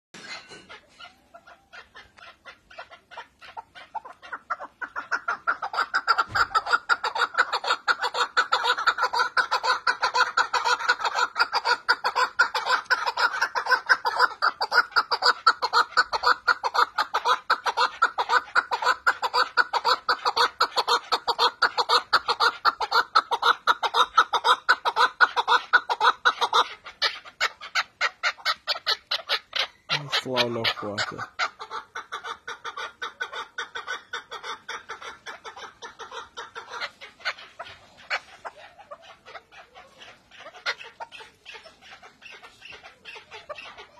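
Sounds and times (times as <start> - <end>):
partridge calling: 0.2 - 43.9.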